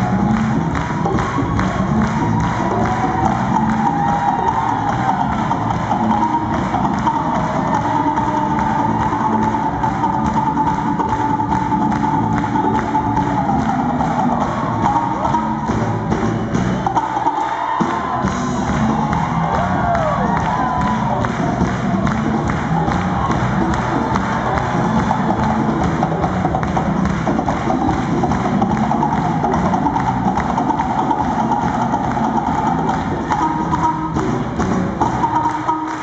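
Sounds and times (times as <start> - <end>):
congas: 0.0 - 36.0
handclaps: 0.0 - 36.0
live band playing upbeat groove: 0.0 - 36.0.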